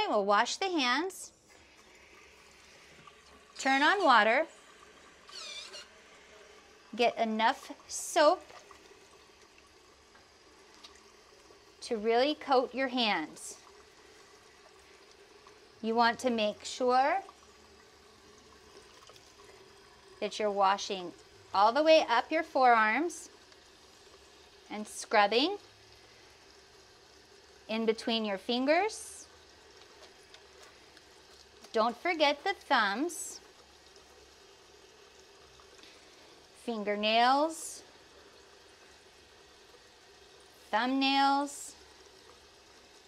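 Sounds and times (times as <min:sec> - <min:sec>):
woman speaking: 0:00.0 - 0:01.3, 0:03.6 - 0:04.5, 0:07.0 - 0:08.4, 0:11.8 - 0:13.6, 0:15.8 - 0:17.3, 0:20.2 - 0:23.3, 0:24.7 - 0:25.6, 0:27.7 - 0:29.2, 0:31.8 - 0:33.4, 0:36.6 - 0:37.8, 0:40.7 - 0:41.7
faucet running into sink: 0:01.6 - 0:43.0.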